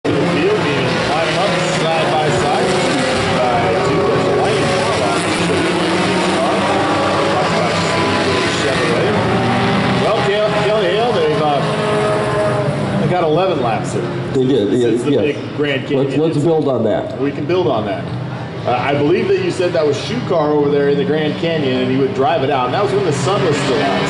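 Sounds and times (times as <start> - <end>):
race car engines passing: 0.0 - 24.0.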